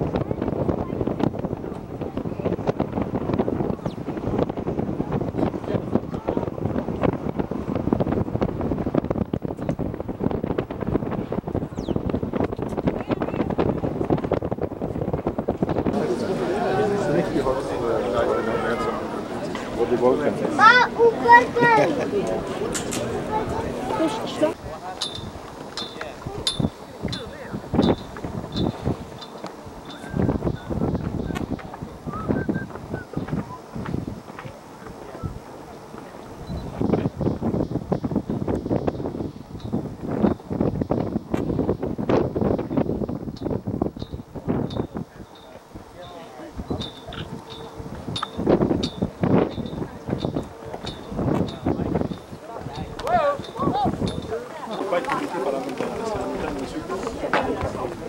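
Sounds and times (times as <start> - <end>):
indistinct voices talking: 0.0 - 58.0
wind buffeting microphone: 0.0 - 58.0.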